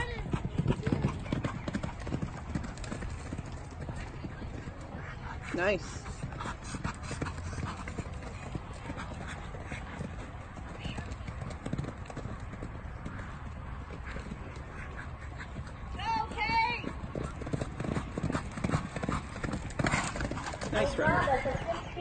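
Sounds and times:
horse hoofbeats on dirt: 0.0 - 22.0.

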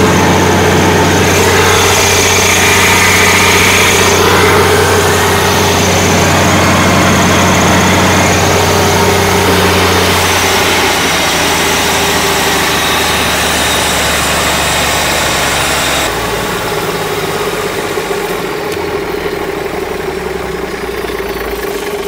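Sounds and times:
diesel engine running: 0.0 - 22.0.

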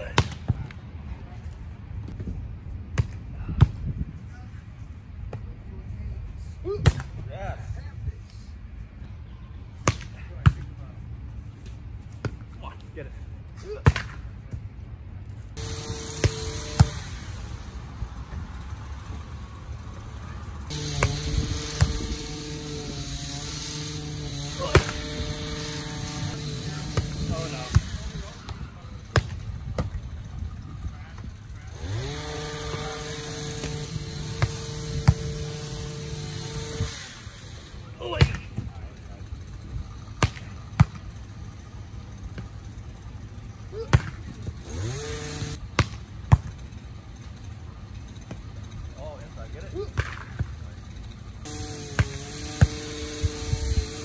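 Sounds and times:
motor hum: 15.6 - 28.5, 31.6 - 37.9, 40.8 - 45.6, 50.4 - 54.0
volleyball hand slaps: 50.0 - 50.5.

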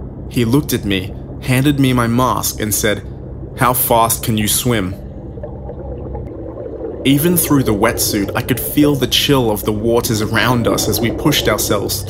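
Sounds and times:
deep underwater rumbling drone: 0.0 - 12.0.

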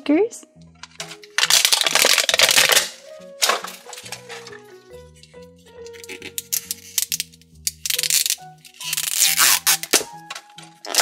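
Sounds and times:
plastic wrap crinkling: 1.0 - 4.7, 5.9 - 10.1.

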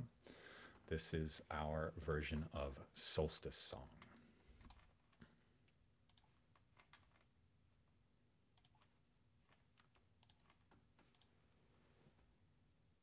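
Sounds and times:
faint computer clicks: 6.1 - 7.3, 8.6 - 8.9, 9.5 - 11.3.

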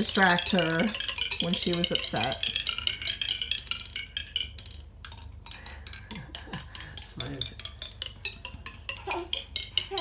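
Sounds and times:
small balls clicking down toy: 0.0 - 10.0.

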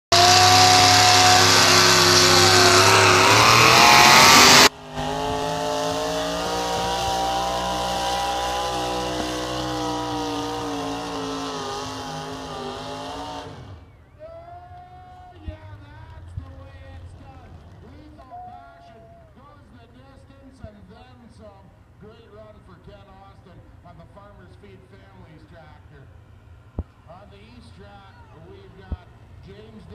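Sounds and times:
tractor engine running flat out: 0.1 - 14.1.

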